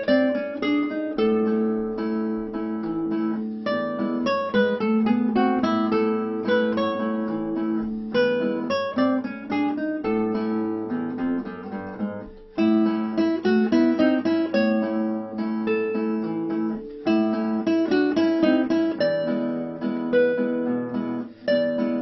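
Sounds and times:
fingerstyle classical guitar: 0:00.0 - 0:22.0.

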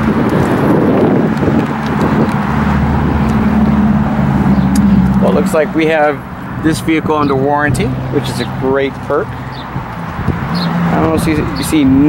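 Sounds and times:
vehicle engine humming: 0:00.0 - 0:12.0
wind rumbling on microphone: 0:00.0 - 0:12.0.

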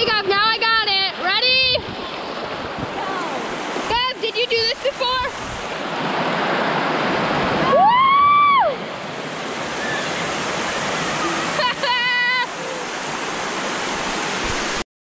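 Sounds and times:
waterfall rushing: 0:00.8 - 0:14.8.

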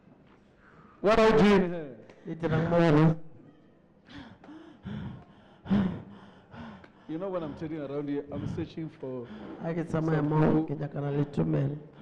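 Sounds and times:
woman gasping into microphone: 0:04.1 - 0:07.1.

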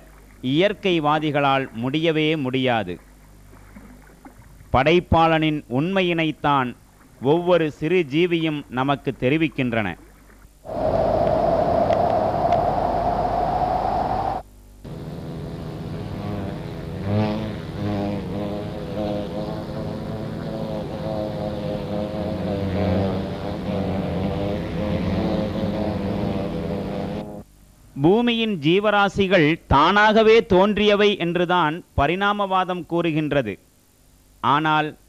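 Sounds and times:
honeybees buzzing: 0:13.9 - 0:27.4.

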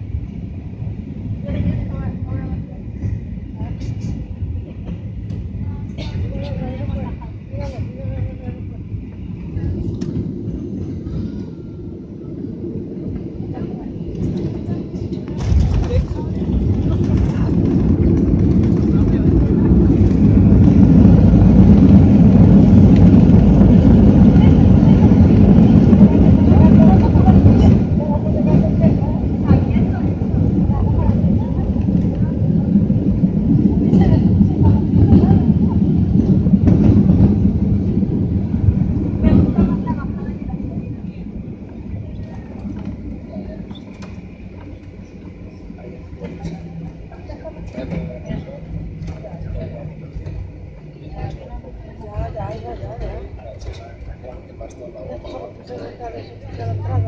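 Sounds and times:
jet engine noise: 0:00.0 - 0:57.0
wheels rolling on tarmac: 0:00.0 - 0:57.0.

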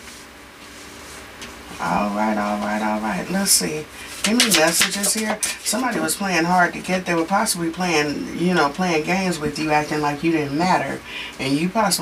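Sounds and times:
person speaking: 0:01.7 - 0:12.0.

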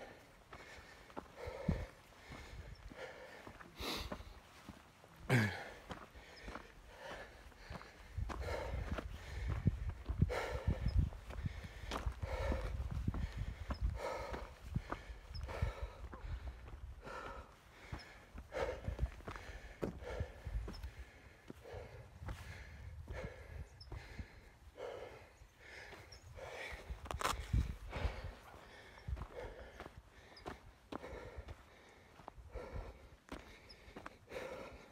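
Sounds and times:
person breathing: 0:00.0 - 0:34.9
wind rumble on microphone: 0:08.0 - 0:17.2, 0:18.6 - 0:24.6, 0:26.1 - 0:29.6
footsteps crunching on gravel: 0:26.4 - 0:31.7.

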